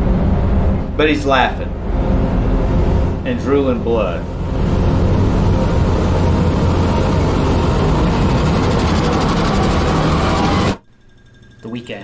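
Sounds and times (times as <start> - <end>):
steady low rumble: 0.0 - 10.8.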